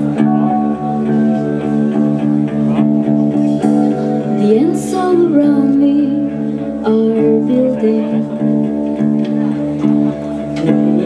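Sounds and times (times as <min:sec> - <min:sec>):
electric guitars and bass chords: 0:00.0 - 0:11.0
person singing: 0:03.6 - 0:09.3, 0:10.4 - 0:11.0.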